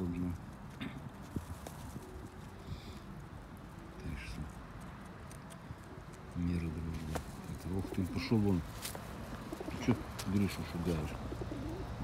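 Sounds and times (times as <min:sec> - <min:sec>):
beaks pecking at ground: 0:00.0 - 0:12.0
pigeons cooing: 0:06.9 - 0:12.0.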